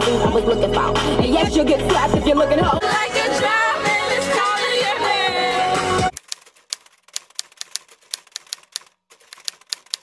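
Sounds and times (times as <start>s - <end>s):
typewriter key clicks: 6.2s - 10.0s.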